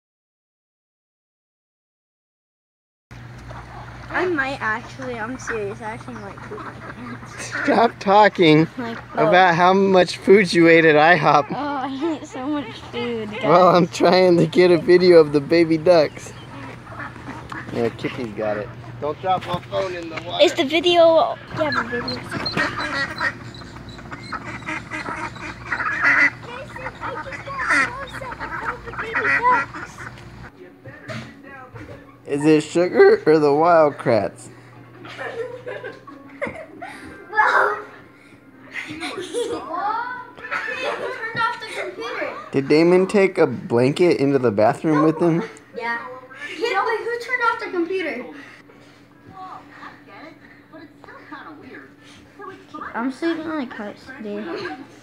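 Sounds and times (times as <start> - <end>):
outdoor background noise: 3.1 - 55.0
birds calling: 3.2 - 30.6, 31.9 - 39.5, 42.4 - 47.7
steady low hum: 3.2 - 55.0.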